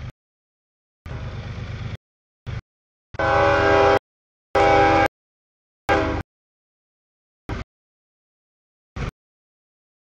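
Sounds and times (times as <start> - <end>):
diesel locomotive rumbling past: 1.1 - 2.6, 3.2 - 4.0, 5.9 - 6.2
locomotive air horn chord: 3.2 - 4.0, 4.6 - 5.1, 5.9 - 6.2.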